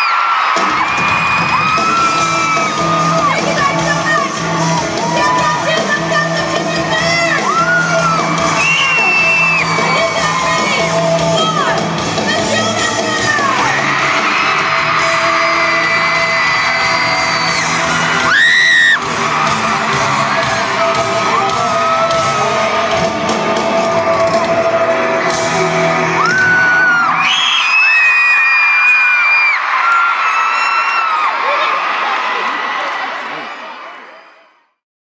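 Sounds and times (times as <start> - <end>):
fans screaming: 0.0 - 34.2
crowd cheering: 0.0 - 34.8
live band music over pa: 0.4 - 27.3.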